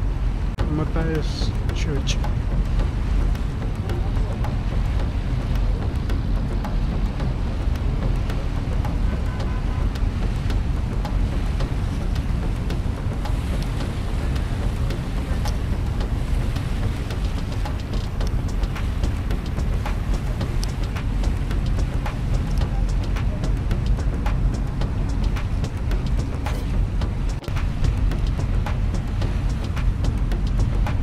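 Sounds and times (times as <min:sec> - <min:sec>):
wind rumble on microphone: 0:00.0 - 0:31.0.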